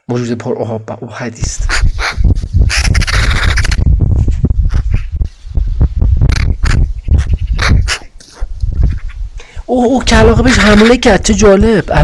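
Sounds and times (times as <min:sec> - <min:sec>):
wind buffeting microphone: 0:01.4 - 0:12.0
crow rasping call: 0:02.7 - 0:03.8.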